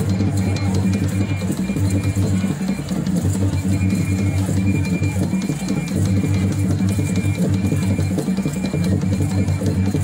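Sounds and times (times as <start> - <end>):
steady drum beat: 0.0 - 10.0.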